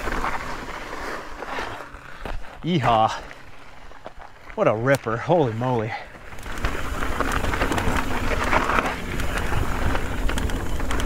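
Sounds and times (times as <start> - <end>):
bike tyres rolling over gravel: 0.0 - 11.0.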